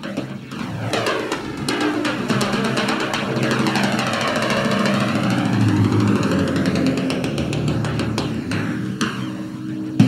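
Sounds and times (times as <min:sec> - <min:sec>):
sweeping whoosh: 0:00.6 - 0:09.4.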